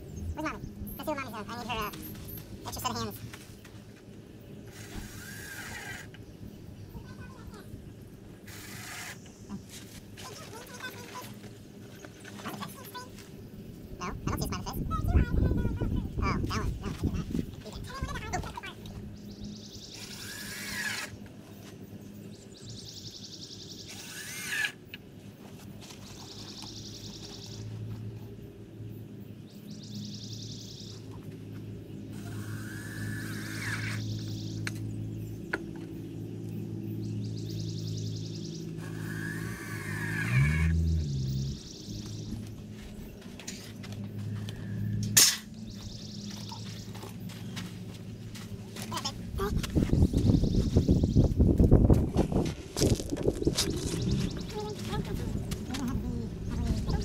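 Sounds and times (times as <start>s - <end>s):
cordless drill running: 4.7s - 6.1s, 8.5s - 9.2s, 20.1s - 21.1s, 23.9s - 24.8s.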